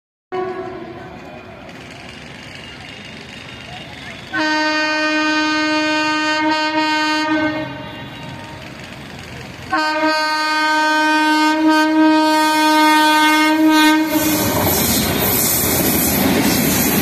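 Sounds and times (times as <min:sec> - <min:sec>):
locomotive horn blasts: 0:00.3 - 0:01.0, 0:04.3 - 0:08.8, 0:09.7 - 0:14.6
low train rumble: 0:00.3 - 0:17.0.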